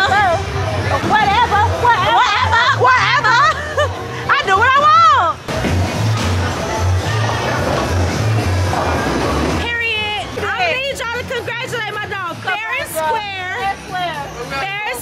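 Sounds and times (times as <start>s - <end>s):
excited voices: 0.0s - 5.4s.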